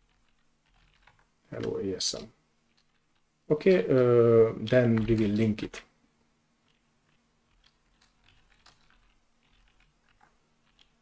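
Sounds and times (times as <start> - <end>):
faint keyboard typing: 0.0 - 5.9, 6.6 - 11.0.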